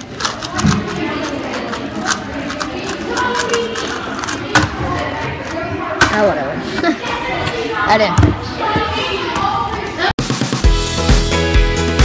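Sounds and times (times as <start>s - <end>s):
plastic puzzle cubes clicking: 0.0s - 5.6s
children murmuring: 0.0s - 10.2s.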